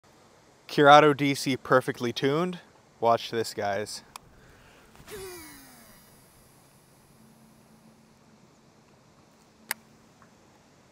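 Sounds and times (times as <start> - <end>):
fishing reel braking whine: 5.1 - 7.2.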